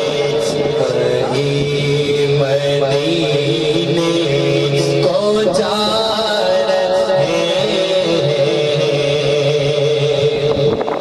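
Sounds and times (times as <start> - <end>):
hummed vocal drone chorus: 0.0 - 11.0.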